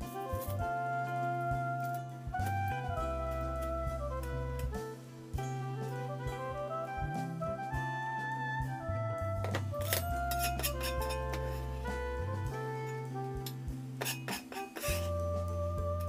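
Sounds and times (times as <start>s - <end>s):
instrumental background music: 0.0s - 16.0s.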